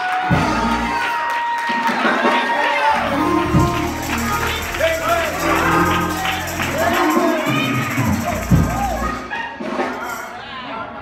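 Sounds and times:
live church music: 0.0 - 10.6
congregation shouting and cheering: 0.0 - 11.0.

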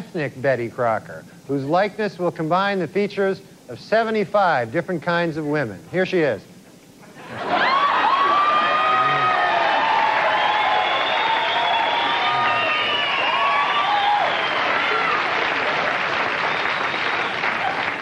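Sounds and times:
audience laughing: 7.1 - 9.4
audience cheering: 7.2 - 18.0
audience applauding: 7.4 - 18.0.

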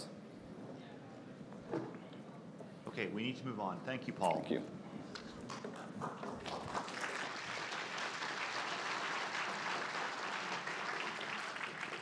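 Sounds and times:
audience applauding: 5.5 - 12.0.

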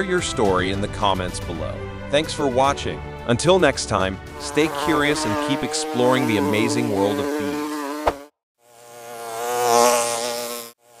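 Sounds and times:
insect buzzing drone: 4.3 - 11.0.

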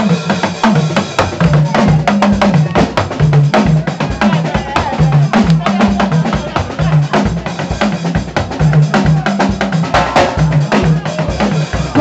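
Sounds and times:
drum kit kick and snare: 0.0 - 12.0
live band playing dance groove: 0.0 - 12.0.

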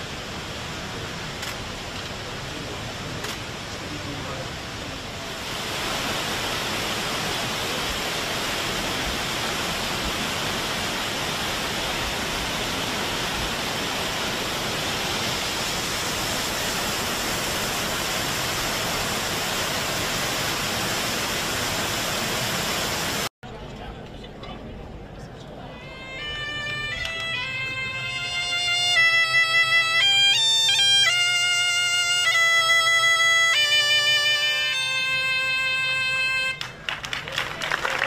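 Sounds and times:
waterfall rushing: 0.0 - 23.3.

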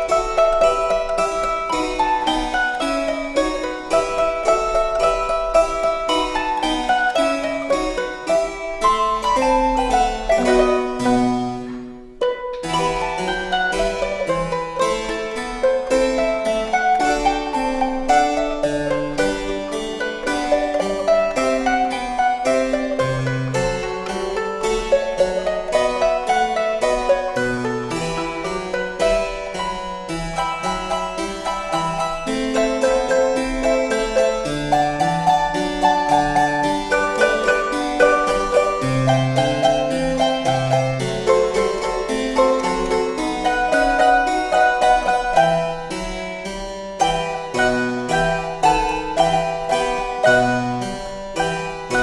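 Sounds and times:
harpsichord bass line: 0.0 - 52.0
mandolin plucked notes: 0.0 - 52.0.

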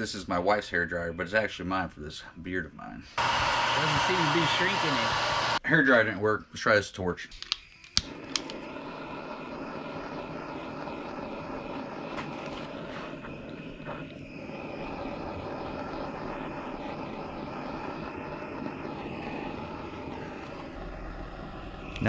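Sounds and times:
gas torch flame hissing: 3.1 - 5.6, 7.6 - 22.0.

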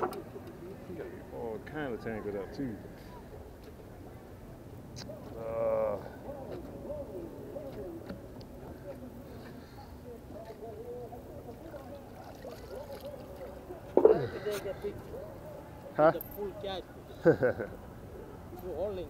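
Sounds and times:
faint voices talking: 0.0 - 19.0.

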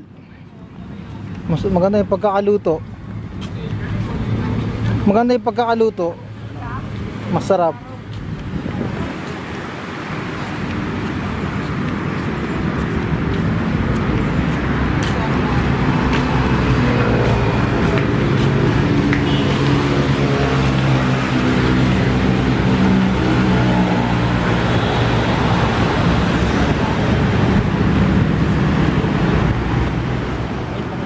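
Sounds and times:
road traffic noise: 0.0 - 31.0
vehicle engine humming: 0.0 - 31.0.

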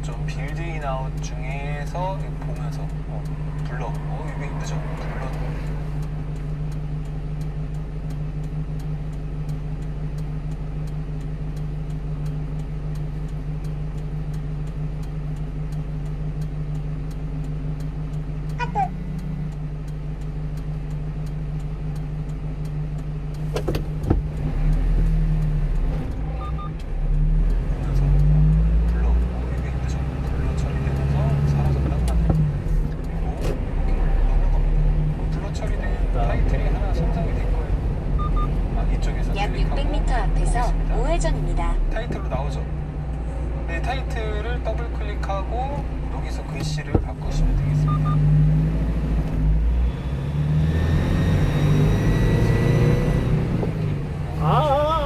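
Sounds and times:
truck engine idling and revving: 0.0 - 55.0.

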